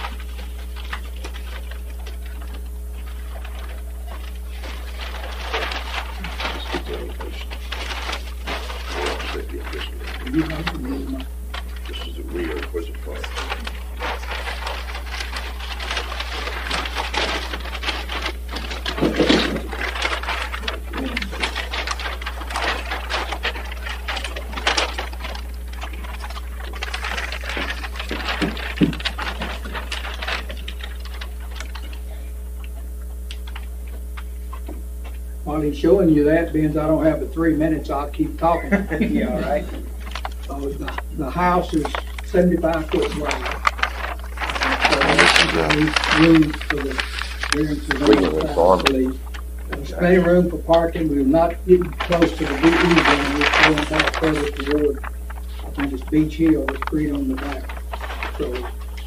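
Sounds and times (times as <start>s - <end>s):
low electrical hum: 0.0s - 59.0s
rustling: 0.0s - 59.0s.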